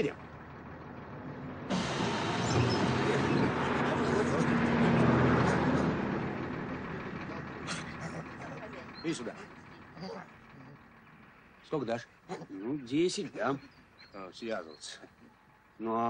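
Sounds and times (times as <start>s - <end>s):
bus engine running: 0.0s - 16.0s.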